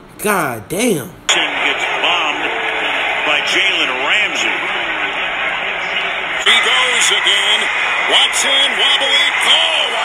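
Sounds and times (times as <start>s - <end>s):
announcer talking: 0.2s - 2.4s
stadium crowd roar: 1.3s - 10.0s.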